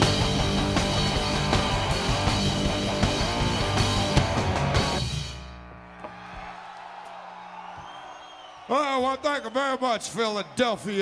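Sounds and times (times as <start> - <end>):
amplifier hum: 3.4 - 6.2.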